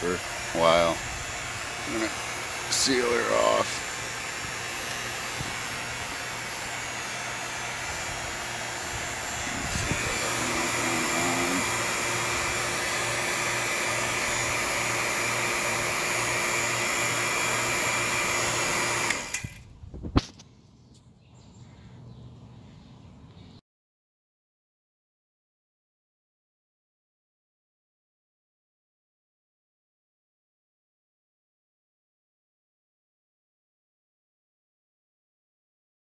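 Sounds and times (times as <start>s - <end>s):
vacuum pump running: 0.0s - 19.6s.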